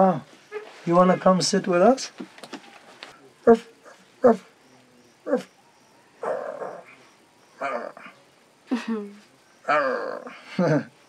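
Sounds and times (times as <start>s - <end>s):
puppy yelping: 5.3s - 5.5s, 6.2s - 6.9s.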